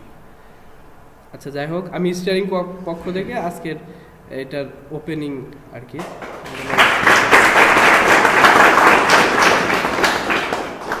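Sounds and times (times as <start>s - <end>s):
audience applauding: 6.0s - 11.0s.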